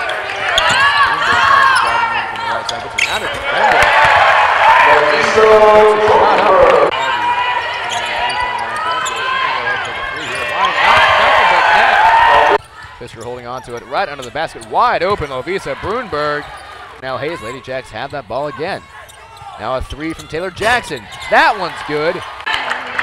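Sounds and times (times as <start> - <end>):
sneakers squeaking on hardwood: 0.0 - 4.3, 6.9 - 11.3, 12.6 - 22.4.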